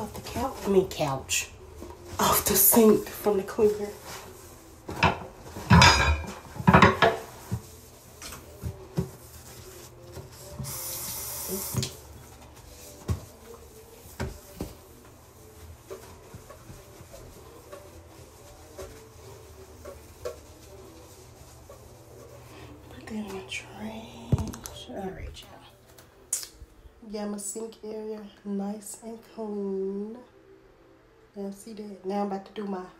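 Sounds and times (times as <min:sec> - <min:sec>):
spray hiss: 0:10.6 - 0:11.9.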